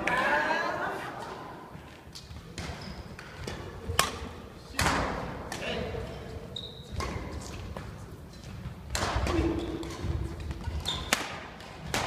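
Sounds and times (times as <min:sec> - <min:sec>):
racket striking shuttlecock: 0:02.6 - 0:05.7, 0:08.9 - 0:12.0.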